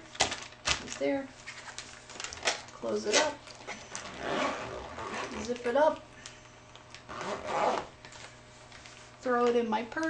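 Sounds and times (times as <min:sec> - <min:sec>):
zipper being drawn closed: 0:04.0 - 0:05.6, 0:07.1 - 0:07.9.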